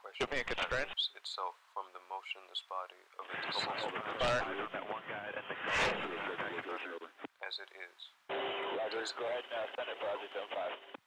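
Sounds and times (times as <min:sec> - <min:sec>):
radio voice traffic: 0:00.0 - 0:10.9
burst of radio noise: 0:03.2 - 0:07.3.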